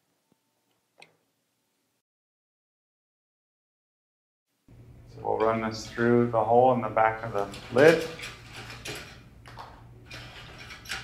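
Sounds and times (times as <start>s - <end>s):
electrical cord clicks and rustles: 7.2s - 11.0s.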